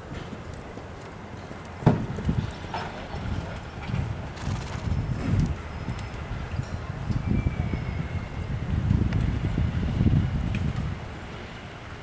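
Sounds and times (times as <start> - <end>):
horse hoofbeats on dirt: 0.0 - 6.8.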